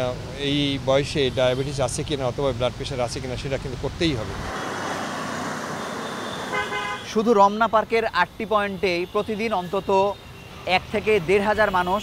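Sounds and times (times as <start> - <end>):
road traffic noise: 0.0 - 12.0
short car horn toot: 6.1 - 7.2.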